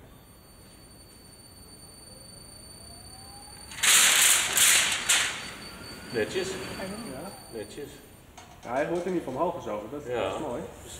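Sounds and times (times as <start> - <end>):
blower whine: 0.0 - 8.2.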